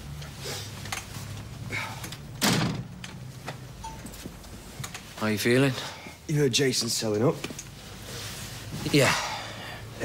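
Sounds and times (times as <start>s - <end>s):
door shutting with a thud: 2.4s - 2.9s.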